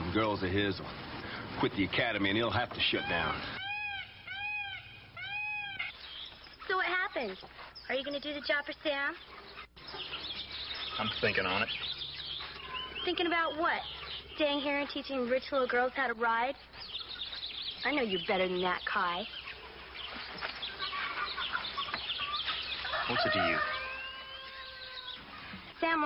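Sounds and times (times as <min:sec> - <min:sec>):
birds chirping: 0:00.0 - 0:26.0
fowl clucking: 0:20.4 - 0:25.6.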